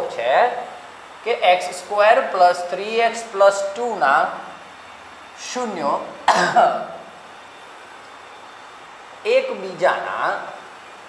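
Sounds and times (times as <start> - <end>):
low room hiss: 0.0 - 11.0
man's voice burst: 5.4 - 7.1.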